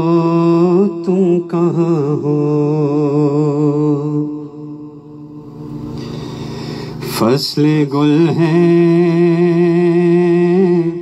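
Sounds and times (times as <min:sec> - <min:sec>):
man chanting: 0:00.0 - 0:05.8, 0:07.0 - 0:11.0.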